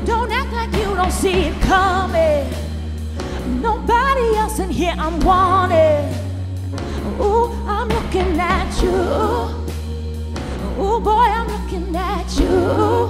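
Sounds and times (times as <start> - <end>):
pop band bass and keyboard: 0.0 - 13.0
woman singing vocal runs: 7.1 - 9.8, 10.6 - 13.0.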